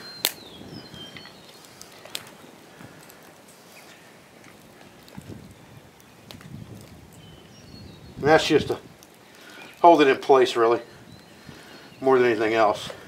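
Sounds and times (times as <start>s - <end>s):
wood fire crackling: 0.0s - 13.0s
hands packing loose dirt: 0.2s - 7.3s.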